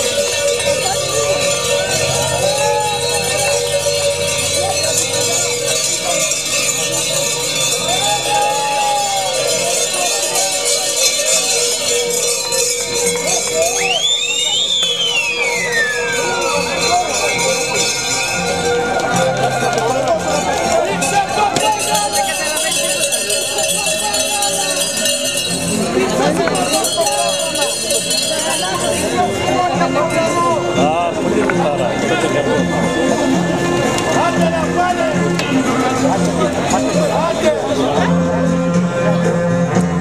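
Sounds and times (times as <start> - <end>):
metal livestock bells jangling: 0.0 - 37.8
cowbells ringing: 0.0 - 39.5
crowd chatter: 0.0 - 40.0.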